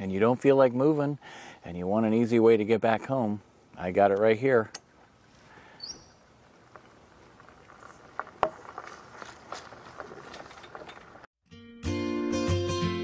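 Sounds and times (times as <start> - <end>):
wheels crunching on gravel: 6.2 - 11.3
acoustic guitar music: 11.5 - 13.0.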